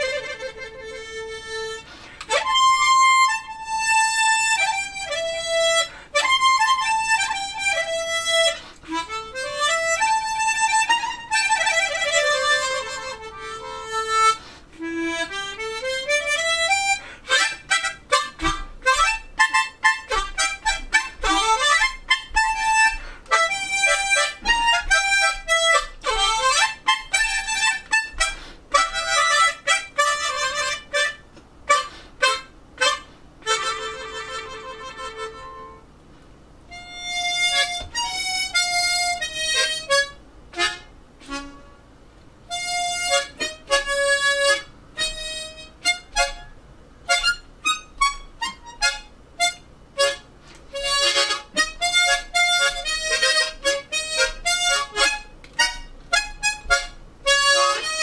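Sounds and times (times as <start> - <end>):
harmonica melody: 0.0 - 36.0, 36.6 - 58.0.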